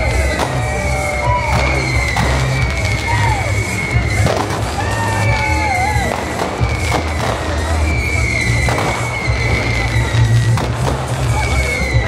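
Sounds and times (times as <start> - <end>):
fireworks bursting: 0.0 - 12.0
loud music with heavy bass: 0.0 - 12.0.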